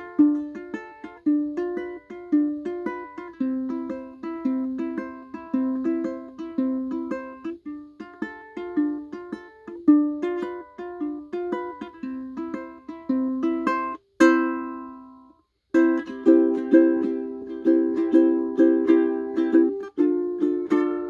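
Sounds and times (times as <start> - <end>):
ukulele strumming chords: 0.0 - 21.0.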